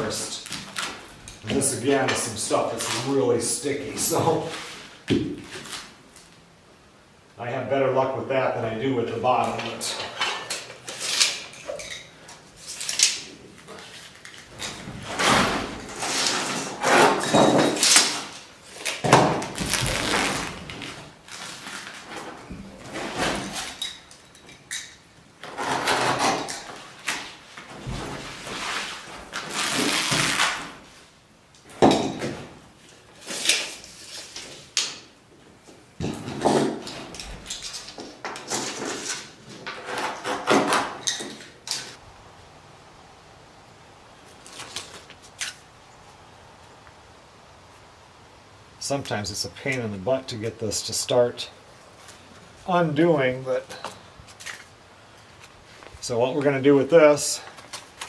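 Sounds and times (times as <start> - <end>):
tape rustling and ripping: 0.2 - 1.5, 4.4 - 6.4, 10.8 - 31.1, 32.9 - 35.1, 44.2 - 45.7, 53.8 - 56.0, 57.4 - 58.0.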